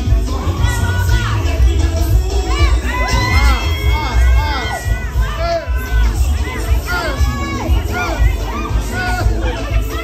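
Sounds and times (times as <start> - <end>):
dance music with heavy bass: 0.0 - 10.0
people shouting and cheering: 0.0 - 10.0.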